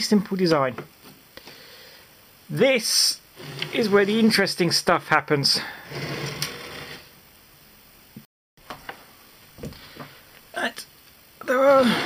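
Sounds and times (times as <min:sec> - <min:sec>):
scraping rustle of handling: 0:03.4 - 0:04.4, 0:05.9 - 0:07.1.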